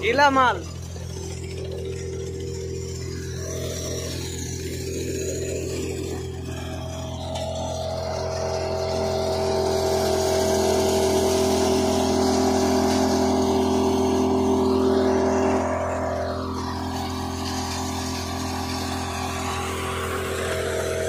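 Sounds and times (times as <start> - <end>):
thresher mechanical drone: 0.0 - 21.0.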